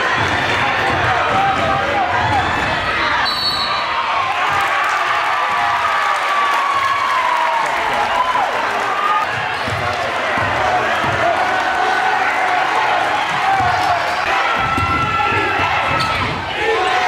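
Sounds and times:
people shouting and chattering: 0.0 - 17.0
basketball bouncing on court: 13.3 - 16.4.

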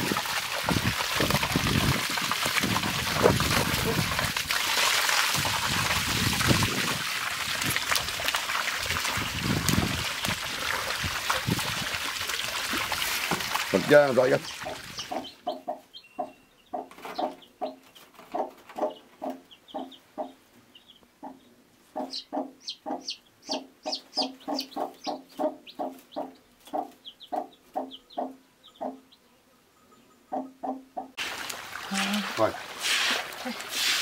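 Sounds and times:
hen clucking: 14.0 - 29.2, 30.0 - 31.2
chicks peeping: 14.4 - 29.2.

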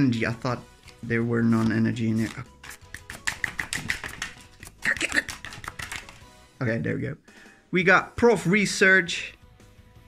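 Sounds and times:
cards snapping and sliding: 0.8 - 6.3.

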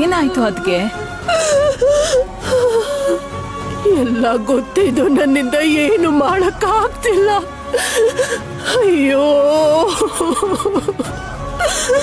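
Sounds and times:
background music: 0.0 - 12.0
woman wailing and crying: 0.0 - 12.0.

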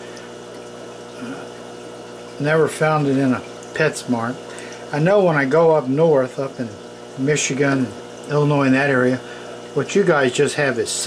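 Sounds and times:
aquarium equipment humming and hissing: 0.0 - 11.0.

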